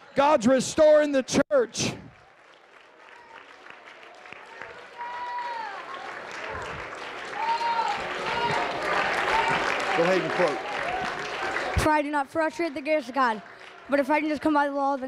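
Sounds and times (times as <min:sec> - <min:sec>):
congregation clapping: 0:02.0 - 0:15.0
people shouting praise: 0:04.4 - 0:14.5.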